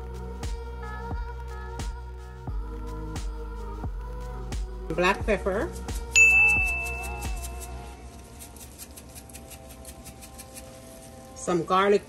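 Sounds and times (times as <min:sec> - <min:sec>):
soft background music with beat: 0:00.0 - 0:12.0
bell-like chime: 0:06.2 - 0:07.7.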